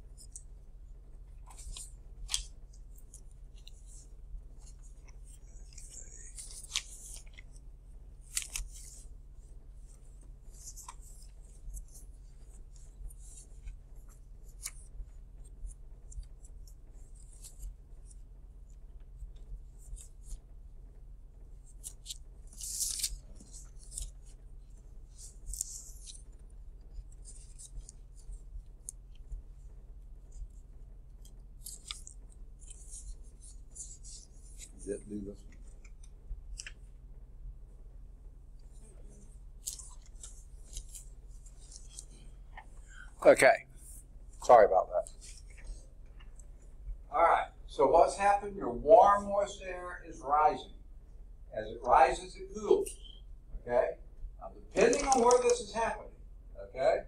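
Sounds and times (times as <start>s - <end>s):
low electrical hum: 0.0s - 57.0s
paper rustling: 1.4s - 9.1s, 15.6s - 18.2s, 21.6s - 24.4s, 25.1s - 29.0s, 31.2s - 36.8s, 39.0s - 43.0s, 43.8s - 46.6s, 54.7s - 55.8s.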